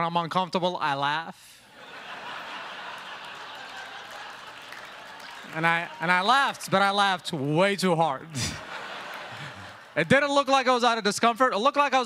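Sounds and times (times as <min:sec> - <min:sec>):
audience laughing: 0:01.8 - 0:07.5, 0:08.2 - 0:10.4
audience applauding: 0:02.0 - 0:10.2.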